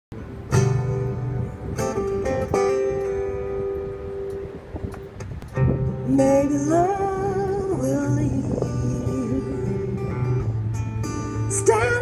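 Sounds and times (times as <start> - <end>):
acoustic guitar strummed chords: 0.2 - 12.0.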